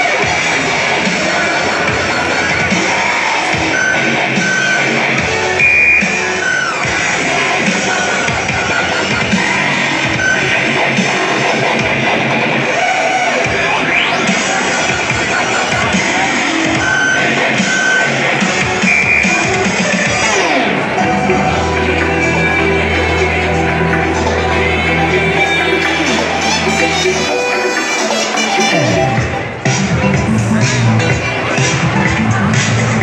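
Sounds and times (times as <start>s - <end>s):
dance music through speakers: 0.0s - 33.0s
electronic sweep: 0.0s - 33.0s.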